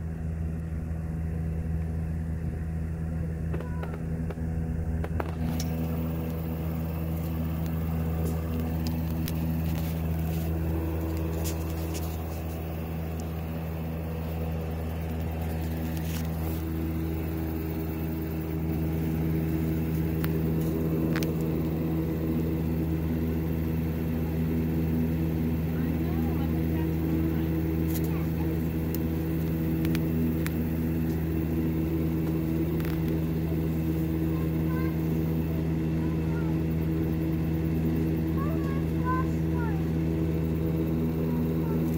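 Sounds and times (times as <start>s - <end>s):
low mechanical hum: 0.0s - 41.9s.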